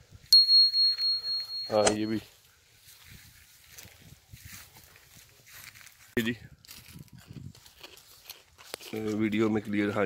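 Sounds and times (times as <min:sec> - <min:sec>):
high notification bell ding: 0:00.4 - 0:02.2.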